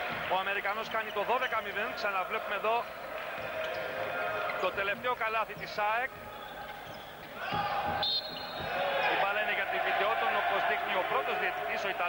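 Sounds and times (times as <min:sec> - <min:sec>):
man commentating: 0:00.3 - 0:02.9, 0:09.1 - 0:12.0.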